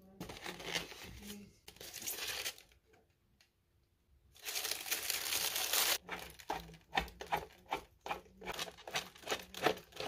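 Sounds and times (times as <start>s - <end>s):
plastic wrapping crinkling: 4.4s - 6.4s.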